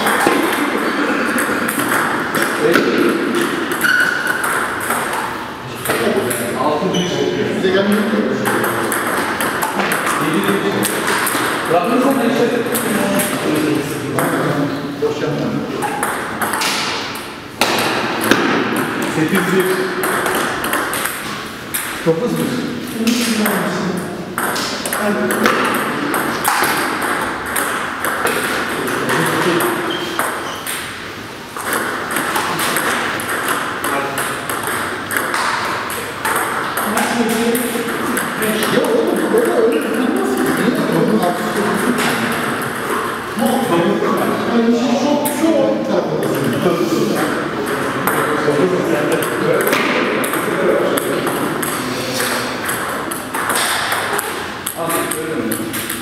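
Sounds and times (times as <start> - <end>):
table tennis ball clicks: 24.4 - 31.0, 31.6 - 40.9, 49.2 - 56.0.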